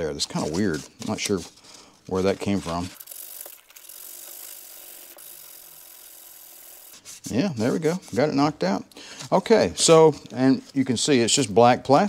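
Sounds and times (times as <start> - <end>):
sandpaper rubbing on plastic: 0.2 - 3.0, 6.9 - 8.6.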